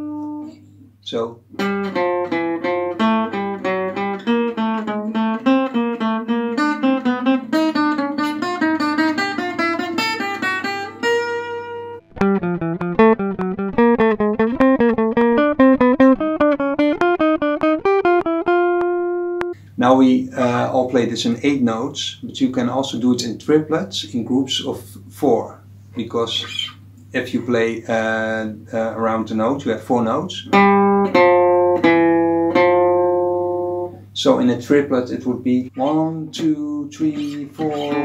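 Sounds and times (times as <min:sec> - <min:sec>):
acoustic guitar single-note line: 0:00.0 - 0:00.6, 0:01.5 - 0:19.6, 0:30.4 - 0:34.1, 0:35.8 - 0:38.0
archtop guitar playing triplets: 0:00.0 - 0:38.0.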